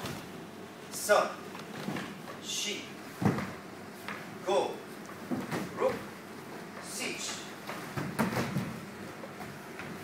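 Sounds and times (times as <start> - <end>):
bare feet landing on wooden floor: 3.2 - 4.2.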